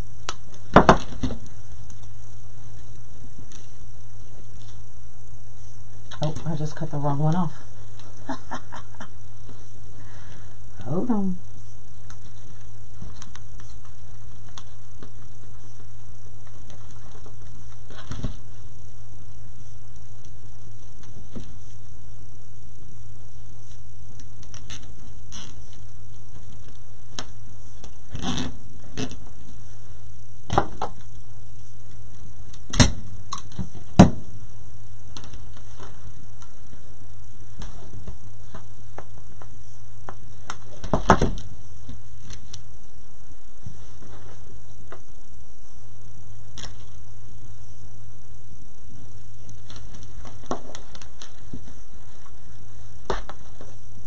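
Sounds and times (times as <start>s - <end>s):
electrical hum and hiss: 0.0s - 54.0s.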